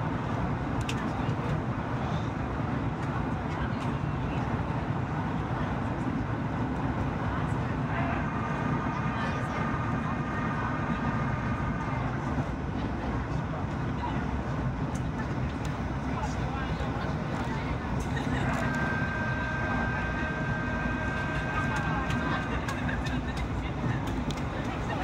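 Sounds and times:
aircraft engines roaring: 0.0 - 25.0
airflow over wing: 0.0 - 25.0
faint voices in cabin: 0.0 - 25.0.

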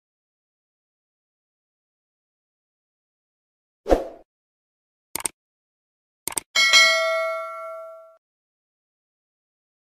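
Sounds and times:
mouse clicks: 5.2 - 5.4
notification bell ding: 6.6 - 8.2.

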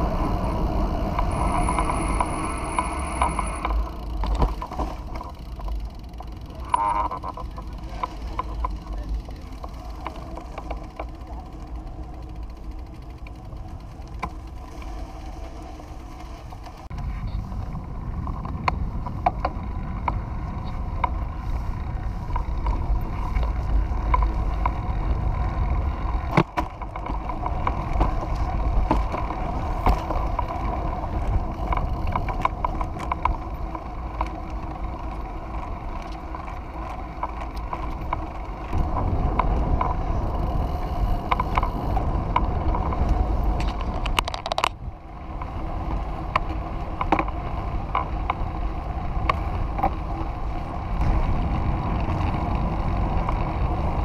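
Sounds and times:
whirr of tyres and drivetrain: 0.0 - 54.0
wind rumbling on microphone: 0.0 - 54.0.

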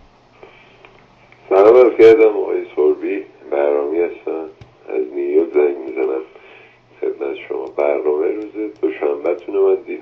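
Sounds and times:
recorded telephone voice message: 1.5 - 6.3, 7.0 - 10.0.

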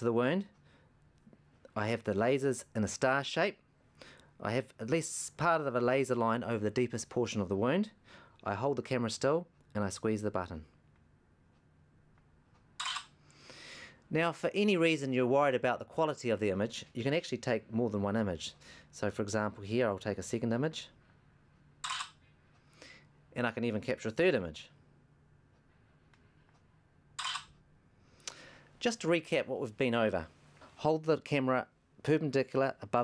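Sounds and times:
camera shutter burst: 12.8 - 13.2, 21.8 - 22.2, 27.2 - 27.5.

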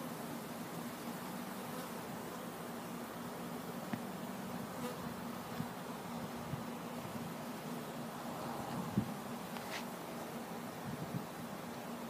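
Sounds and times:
honey bees buzzing: 0.0 - 12.0.

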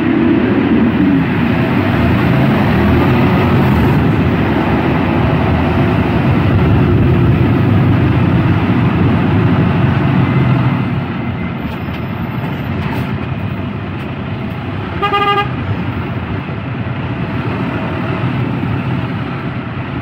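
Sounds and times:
truck engine and road noise: 0.0 - 20.0.

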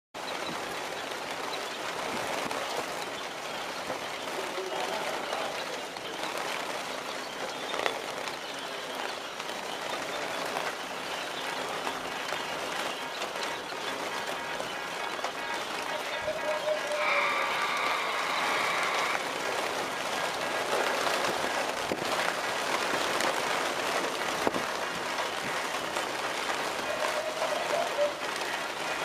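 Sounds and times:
many small bird calls: 0.2 - 29.0
wing flutters: 0.4 - 29.0.

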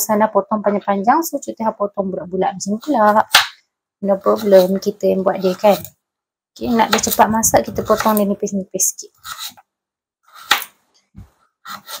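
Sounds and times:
knife cutting carrot: 10.3 - 10.8, 11.7 - 12.0.

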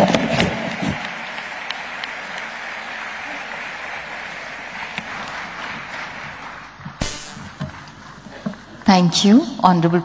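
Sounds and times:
audience applauding: 0.0 - 8.8.

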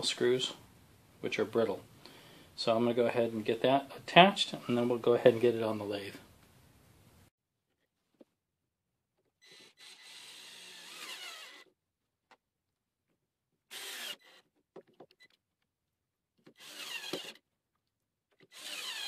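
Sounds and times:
cordless drill driving screws: 9.4 - 11.7, 13.7 - 14.5, 16.5 - 17.4, 18.4 - 19.0.

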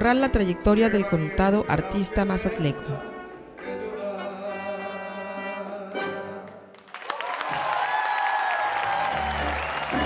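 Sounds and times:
audience applauding: 6.7 - 10.0.

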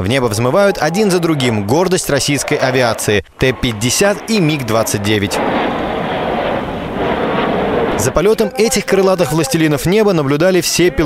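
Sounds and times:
fighter jets flying past: 0.4 - 9.8.

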